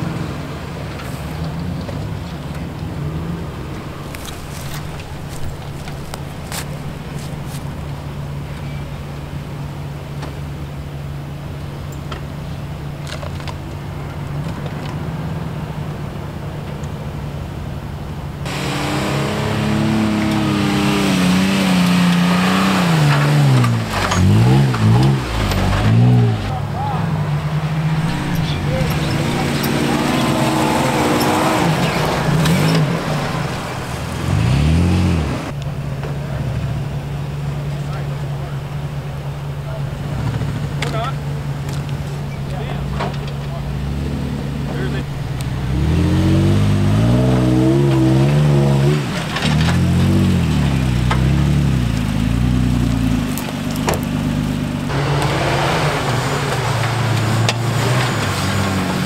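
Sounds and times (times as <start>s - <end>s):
truck engines revving: 0.0s - 59.0s.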